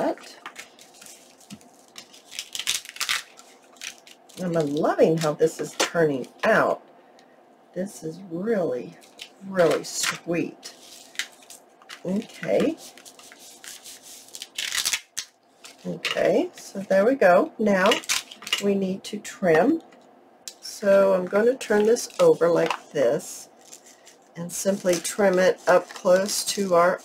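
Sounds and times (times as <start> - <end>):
paper crinkling: 0.0 - 5.4, 10.7 - 16.2, 23.6 - 27.0
paper envelope rustling: 0.1 - 5.3, 10.7 - 15.0, 23.6 - 27.0.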